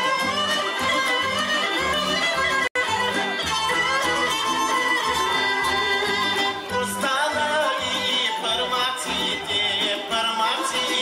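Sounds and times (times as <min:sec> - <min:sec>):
folk ensemble playing: 0:00.0 - 0:11.0
man singing folk song: 0:06.0 - 0:11.0.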